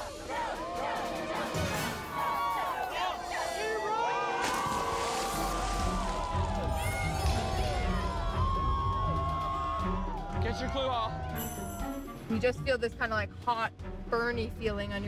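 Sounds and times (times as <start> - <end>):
crowd cheering and shouting: 0.0 - 12.1.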